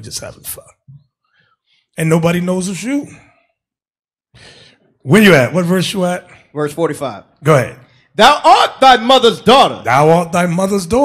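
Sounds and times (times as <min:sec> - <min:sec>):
breath into microphone: 0:04.3 - 0:05.0.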